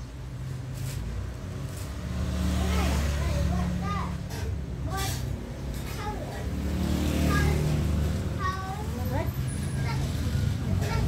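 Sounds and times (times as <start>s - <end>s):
child's high voice: 2.5s - 11.0s.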